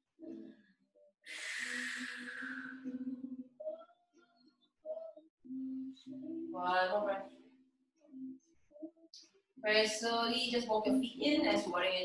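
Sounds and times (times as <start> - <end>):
person sighing: 1.3 - 2.9.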